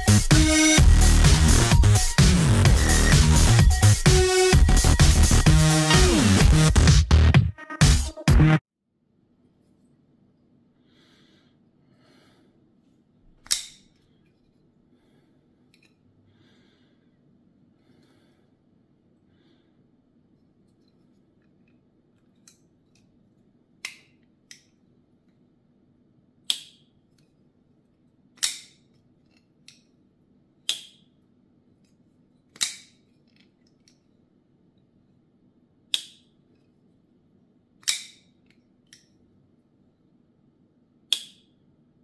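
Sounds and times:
knife closing clicks: 13.4s - 13.8s, 28.4s - 29.8s, 30.7s - 31.0s, 32.6s - 33.0s, 35.9s - 36.2s, 37.8s - 38.3s, 41.1s - 41.5s
knife blade snapping open: 13.4s - 13.9s, 28.4s - 28.8s, 30.7s - 31.0s, 32.6s - 32.9s, 37.8s - 38.2s.

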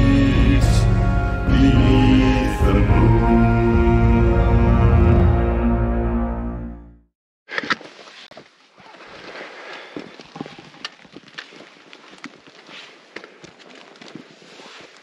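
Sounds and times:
background music: 0.0s - 7.1s
footsteps on rough ground: 7.6s - 15.0s.

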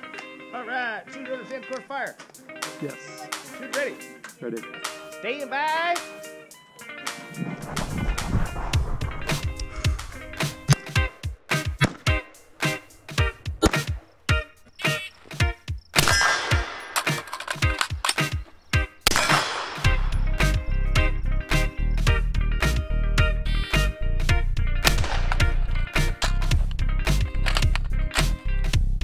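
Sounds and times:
background music: 0.0s - 29.0s
rifle shots: 16.0s - 18.3s, 19.0s - 20.0s, 24.8s - 25.6s.

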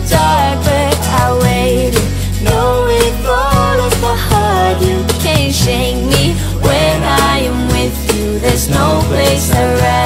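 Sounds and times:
electronic pop music: 0.0s - 10.0s.

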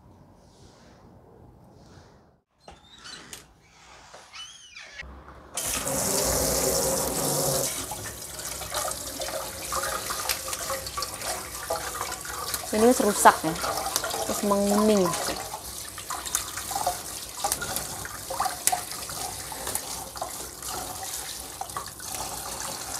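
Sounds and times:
greens rinsed by hand: 5.6s - 22.9s
tap water running into steel sink: 5.6s - 22.9s.

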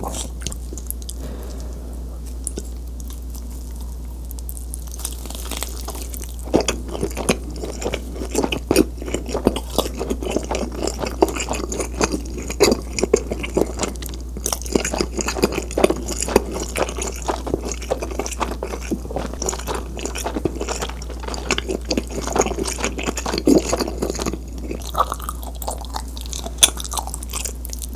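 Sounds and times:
chewing pizza: 0.0s - 1.6s, 2.4s - 27.9s
steady low hum: 0.0s - 27.9s.

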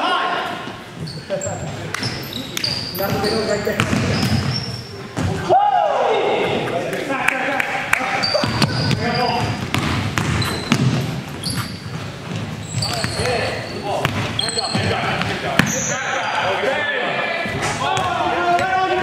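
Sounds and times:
players talking: 0.0s - 19.0s
sneakers squeaking: 0.4s - 5.6s, 7.9s - 19.0s
basketball bouncing on hardwood: 3.8s - 4.5s, 8.4s - 13.2s, 14.0s - 15.7s.

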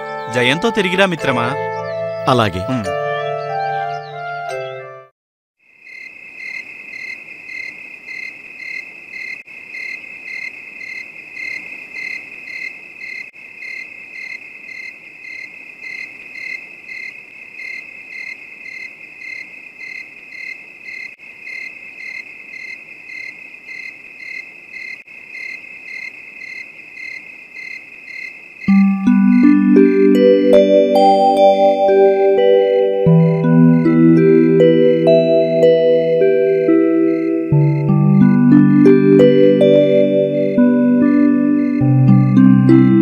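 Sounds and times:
crickets chirping: 5.6s - 30.4s, 32.4s - 42.4s.

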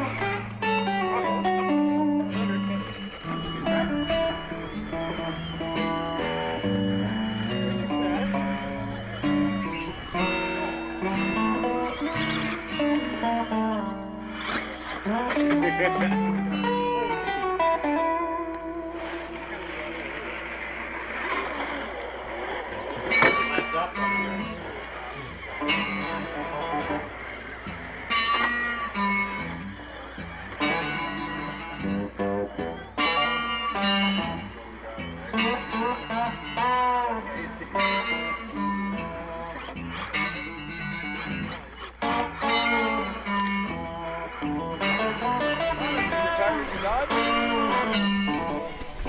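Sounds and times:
background music with guitar: 0.0s - 21.9s, 22.5s - 49.0s.

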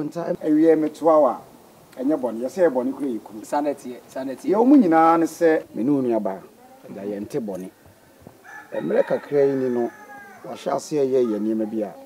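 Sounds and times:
rooster crowing: 8.3s - 11.4s.

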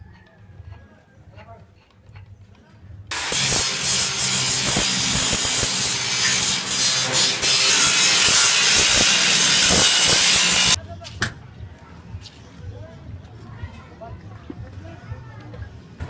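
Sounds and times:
angle grinder grinding steel: 3.1s - 10.8s.

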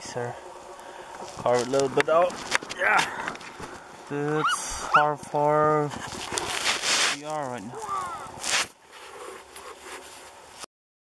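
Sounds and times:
faint rustling and shuffling: 0.0s - 10.7s.

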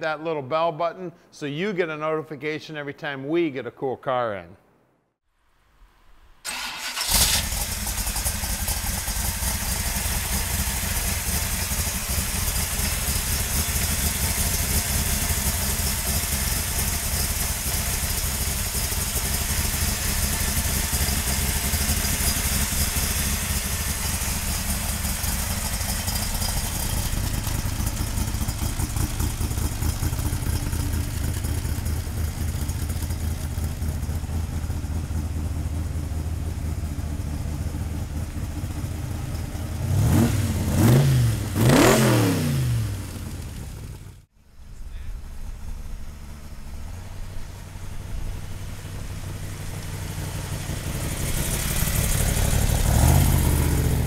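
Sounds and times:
engine cranking: 6.5s - 34.2s, 45.4s - 54.0s
car engine idling: 6.5s - 41.8s, 42.7s - 54.0s.

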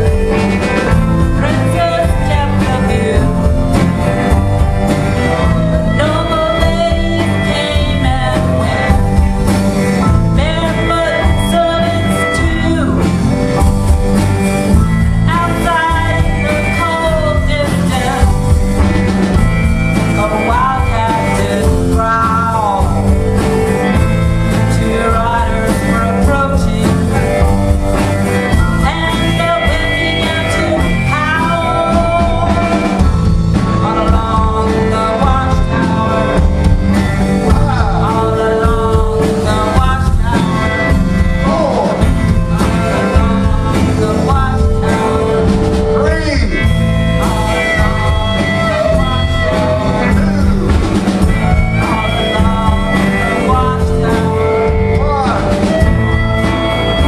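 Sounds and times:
blues band playing live: 0.0s - 57.0s
harmonica bending notes: 0.0s - 57.0s.

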